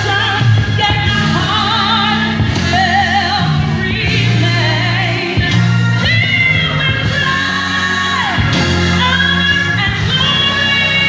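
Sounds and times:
live band music: 0.0 - 11.0
singer with vibrato: 0.0 - 11.0
strong bass line: 0.0 - 11.0.

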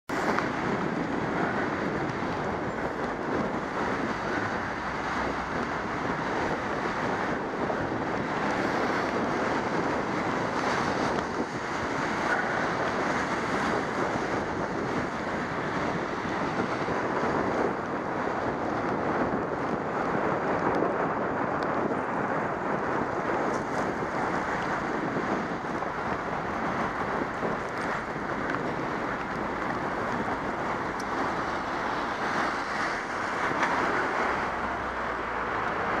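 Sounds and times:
bicycle road noise on wet path: 0.1 - 36.0
rushing wind: 0.1 - 36.0.

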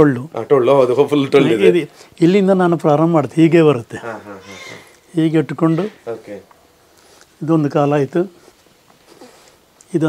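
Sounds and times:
man speaking: 0.0 - 6.5, 7.4 - 8.5
low background sounds: 0.0 - 10.0.

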